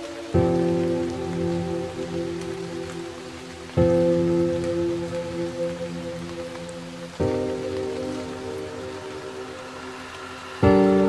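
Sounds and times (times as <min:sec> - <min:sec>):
rain pattering: 0:00.0 - 0:11.0
soft piano chord: 0:00.0 - 0:11.0.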